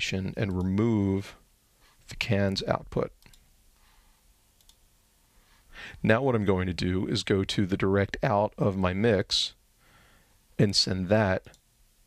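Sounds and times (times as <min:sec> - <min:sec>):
faint computer mouse clicks: 0:04.6 - 0:04.8.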